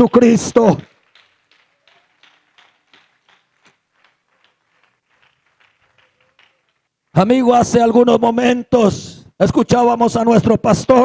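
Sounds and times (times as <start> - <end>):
faint scattered handclaps: 0.0 - 7.2.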